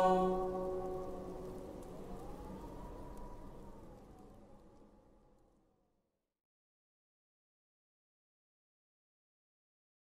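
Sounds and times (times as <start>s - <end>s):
faint high held note: 0.0s - 1.6s
choir chord in reverberant hall: 0.0s - 2.0s.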